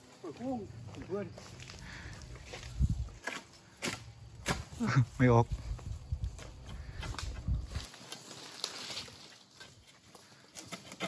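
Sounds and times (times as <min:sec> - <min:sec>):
harvesting sickle knocking and scraping: 0:03.2 - 0:04.8, 0:10.5 - 0:11.0.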